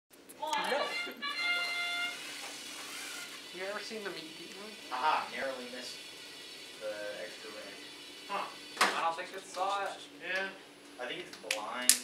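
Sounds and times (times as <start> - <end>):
held electronic tone: 0.6 - 3.4
robot drive motors running: 2.3 - 9.5.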